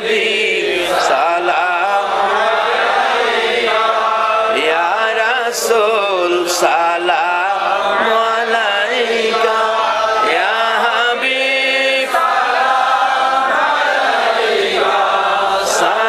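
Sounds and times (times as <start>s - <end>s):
men chanting together: 0.0s - 16.0s.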